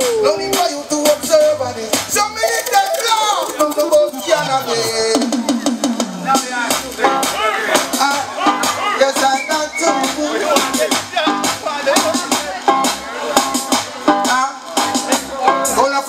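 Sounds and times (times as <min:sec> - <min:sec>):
man singing into a microphone: 0:00.0 - 0:05.7, 0:06.3 - 0:12.2, 0:14.2 - 0:16.0
reggae backing track: 0:00.0 - 0:16.0.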